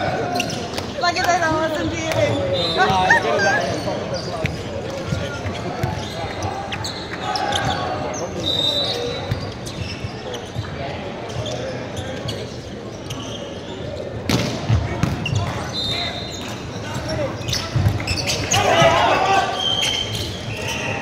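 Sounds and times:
players' voices and calls: 0.0s - 21.0s.

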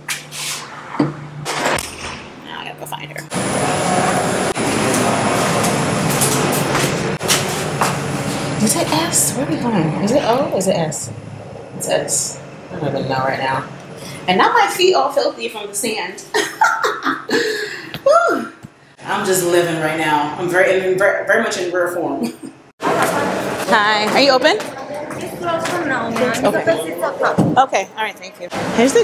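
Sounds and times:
elevator running: 0.8s - 17.8s
woman laughing: 16.3s - 18.3s.

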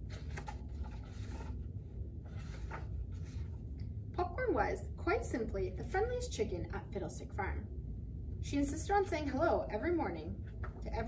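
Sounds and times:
book pages rustling: 0.0s - 3.7s, 10.5s - 10.9s
low room hum: 0.0s - 11.0s.

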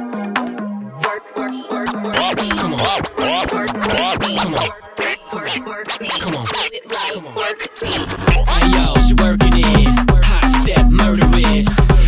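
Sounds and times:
music playing: 0.0s - 6.6s, 7.7s - 12.0s
vinyl scratching on a turntable: 1.0s - 9.8s.

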